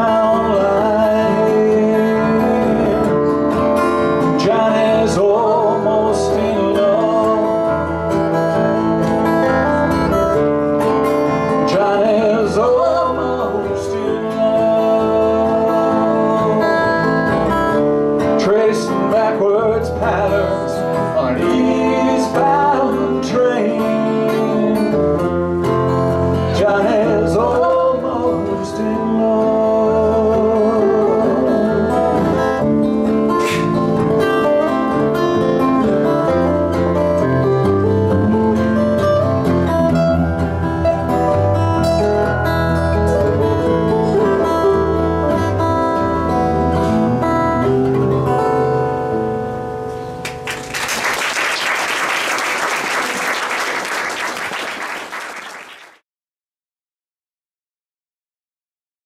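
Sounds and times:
electric bass: 0.0 - 50.4
acoustic guitars: 0.0 - 55.8
audience applause: 50.2 - 56.0.

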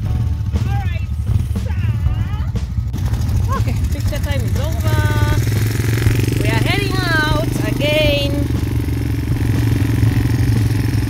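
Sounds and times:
quad bike engine running: 0.0 - 11.0.

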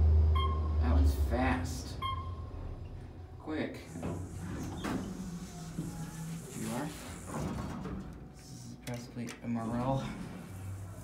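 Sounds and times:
elevator doors sliding open: 3.8 - 11.0.

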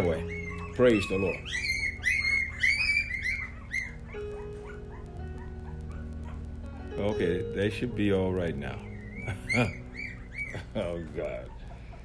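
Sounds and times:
puppies whimpering and squealing: 0.0 - 6.8, 8.1 - 12.0.

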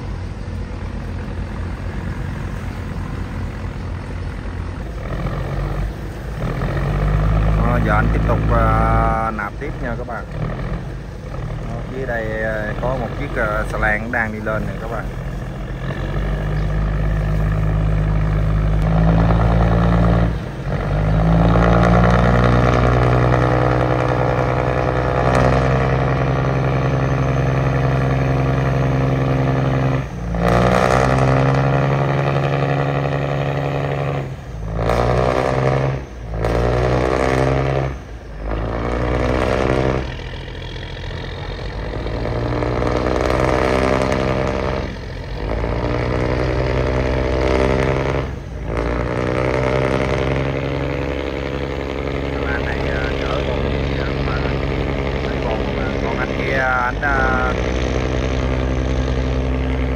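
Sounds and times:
boat diesel engine revving: 0.0 - 59.9.

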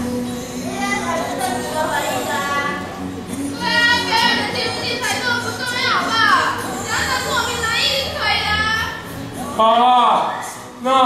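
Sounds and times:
young voices calling out: 0.6 - 11.0.

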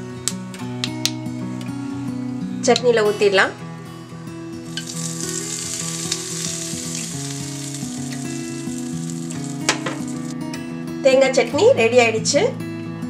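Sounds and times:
hot oil sizzling: 4.4 - 10.4.

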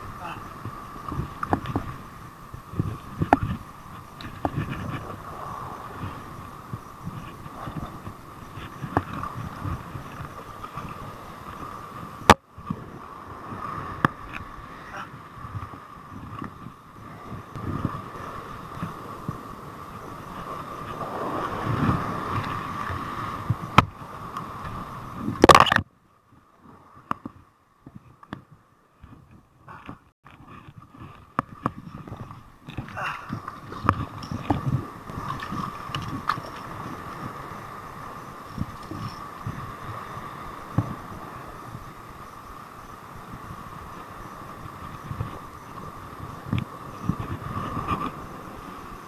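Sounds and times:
wind buffeting microphone: 0.0 - 25.8, 26.6 - 49.0
surf washing over rocks: 0.0 - 25.9, 29.0 - 49.0.

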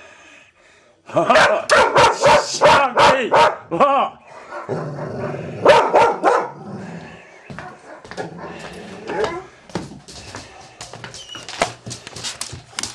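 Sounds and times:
dog barking: 1.3 - 3.7, 4.4 - 4.8, 5.6 - 6.6, 7.6 - 8.6.

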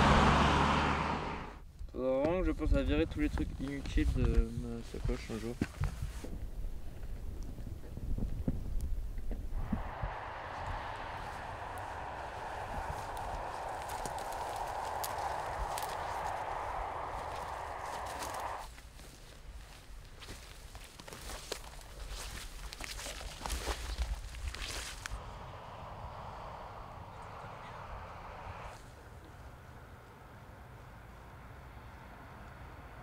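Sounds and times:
steady rushing noise: 9.6 - 18.7.

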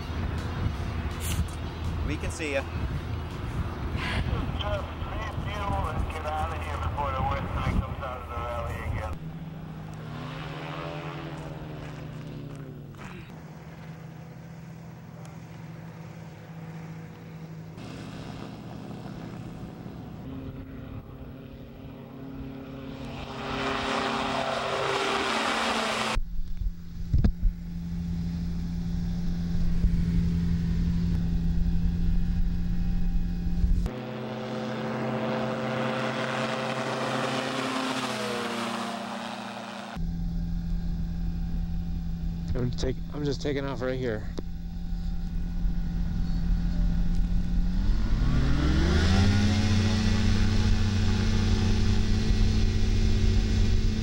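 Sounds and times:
ultralight engines and propellers: 0.0 - 54.0.

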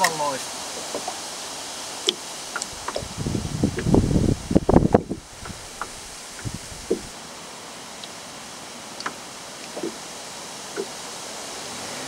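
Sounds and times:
wind gusting across microphone: 0.0 - 7.5.

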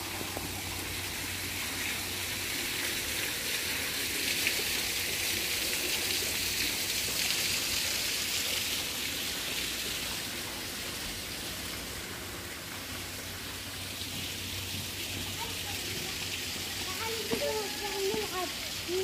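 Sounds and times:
hiss of falling water: 0.0 - 19.0.

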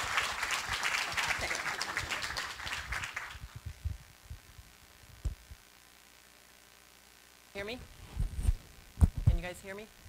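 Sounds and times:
microphone thumps: 3.5 - 5.6, 7.8 - 9.5.

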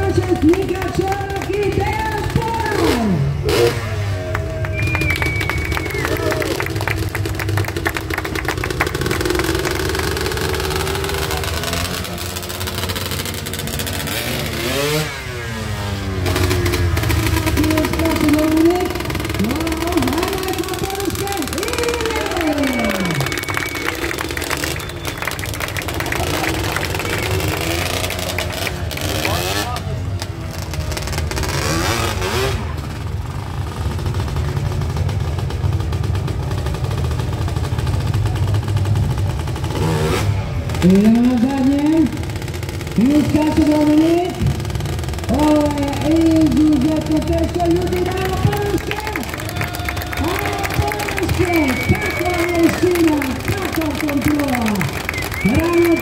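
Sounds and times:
quad engine revving: 0.0 - 56.0.

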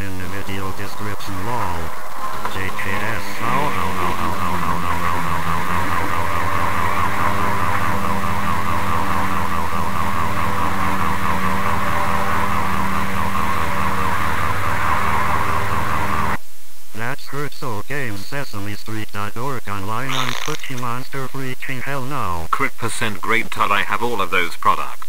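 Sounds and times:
dense electronic drone: 0.0 - 16.4.

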